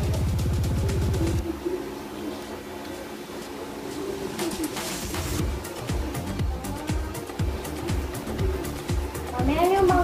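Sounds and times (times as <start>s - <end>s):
background music with a beat: 0.0s - 1.5s, 4.3s - 10.0s
bird cooing: 0.0s - 9.2s
steady hum: 0.0s - 10.0s.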